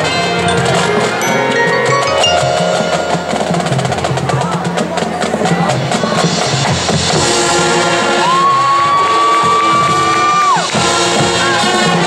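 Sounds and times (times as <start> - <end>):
marching band playing a chord: 0.0 - 5.1
crowd cheering: 7.9 - 12.0.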